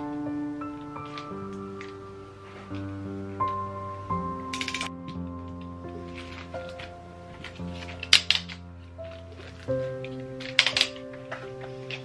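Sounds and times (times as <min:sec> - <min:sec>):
background music with sustained tones: 0:00.0 - 0:12.0.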